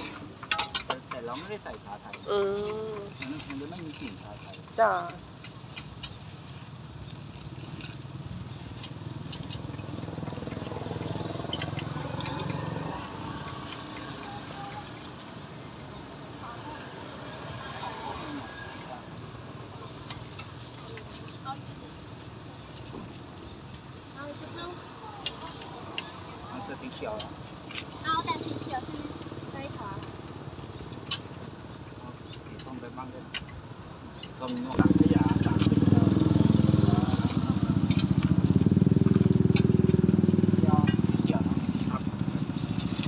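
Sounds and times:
people talking: 0.9s - 5.2s.

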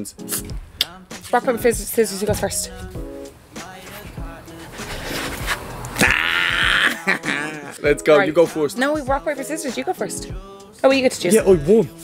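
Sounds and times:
person laughing: 6.0s - 7.8s.

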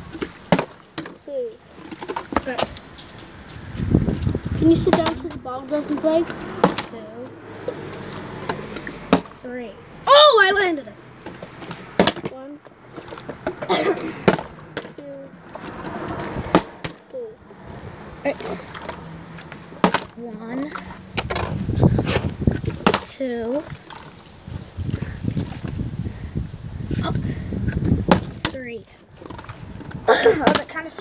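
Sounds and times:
children's voices: 1.2s - 1.6s, 2.4s - 2.8s, 4.4s - 7.4s, 9.3s - 11.0s, 12.2s - 12.6s, 13.7s - 15.4s, 17.0s - 17.5s, 18.2s - 18.8s, 20.2s - 21.0s, 23.0s - 23.8s, 28.5s - 29.0s, 30.1s - 31.0s.

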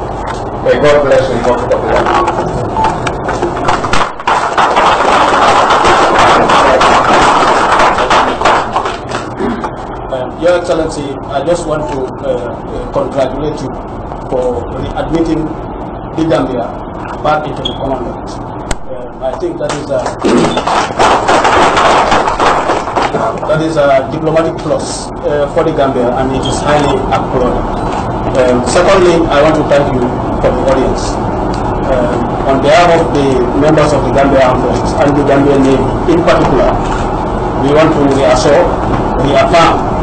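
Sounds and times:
audience applauding: 3.6s - 9.3s, 20.5s - 23.4s
group of people clapping: 3.6s - 9.4s, 19.7s - 23.5s.

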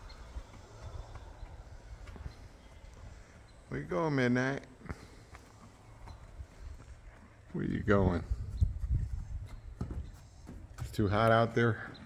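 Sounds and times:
horse hooves on dry dirt: 0.0s - 12.0s.

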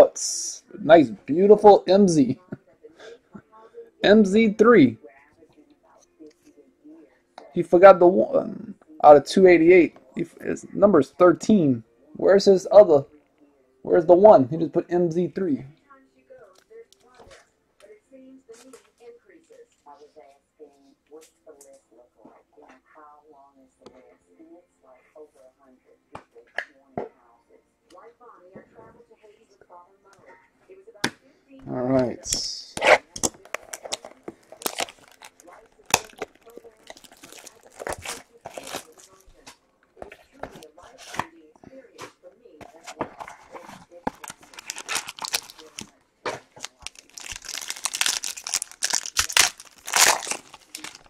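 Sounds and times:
plastic wrap tearing and crackling: 33.2s - 39.2s, 43.5s - 45.9s, 46.5s - 51.0s.

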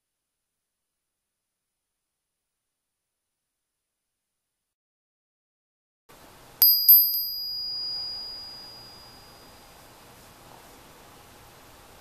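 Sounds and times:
metal hand bell ringing: 6.6s - 9.7s.

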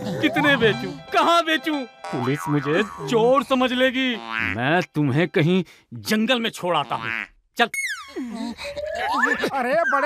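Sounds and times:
man speaking: 0.2s - 7.7s.

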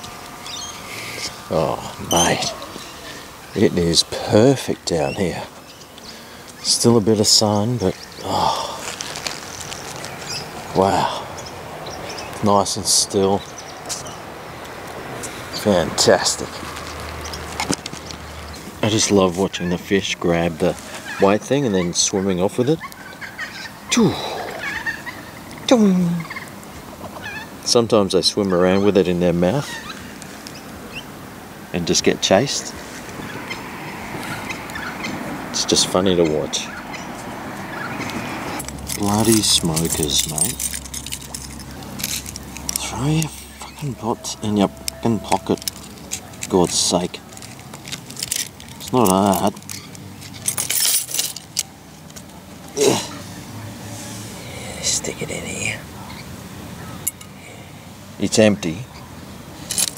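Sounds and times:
metal key scraping on wood: 38.6s - 43.3s, 44.8s - 51.7s.

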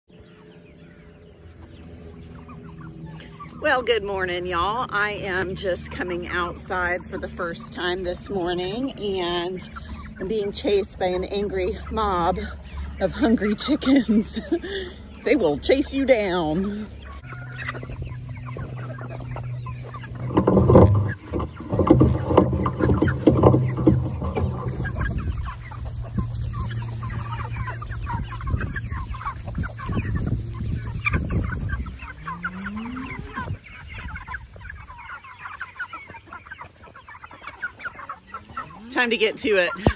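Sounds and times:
chickens clucking and calling: 0.1s - 39.9s.

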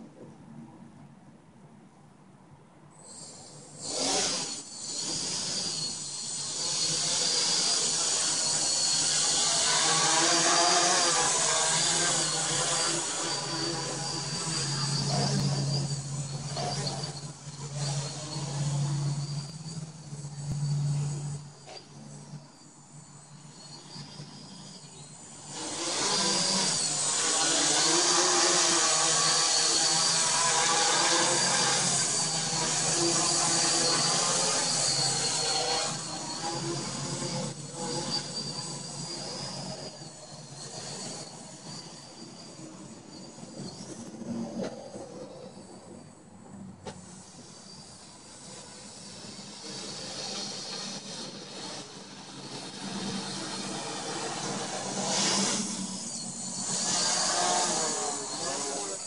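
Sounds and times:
quadcopter motors buzzing whir: 2.9s - 59.0s.

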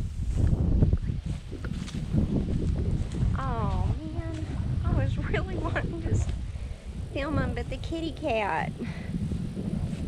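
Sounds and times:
walking through grass: 0.0s - 4.8s, 9.2s - 10.0s
wind rumbling on microphone: 0.0s - 10.0s.

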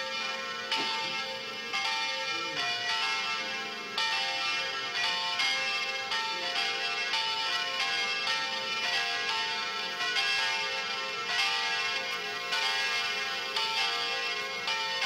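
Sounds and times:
church bells ringing: 0.0s - 15.0s.

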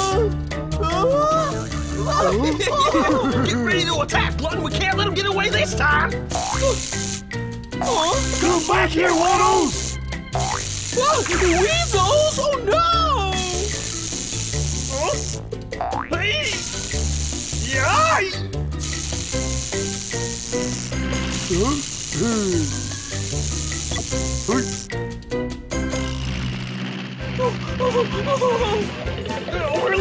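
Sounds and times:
cartoon music with bouncing bass: 0.0s - 30.0s.

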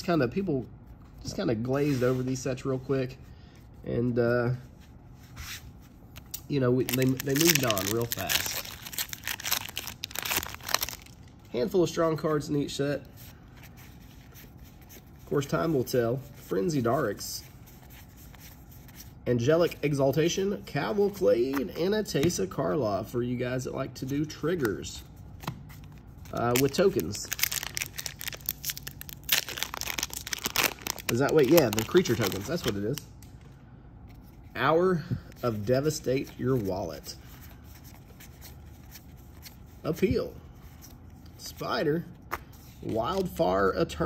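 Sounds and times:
foil wrapper tearing and crinkling: 6.8s - 11.2s, 26.4s - 33.0s.

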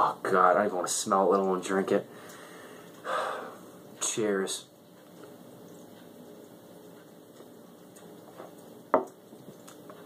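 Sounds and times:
glass set down on wooden table: 8.9s - 9.2s.

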